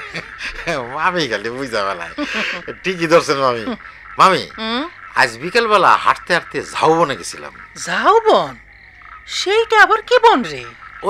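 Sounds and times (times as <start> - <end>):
person's voice: 0.0 - 8.6, 9.3 - 10.7
faint steady background sound: 0.0 - 11.0.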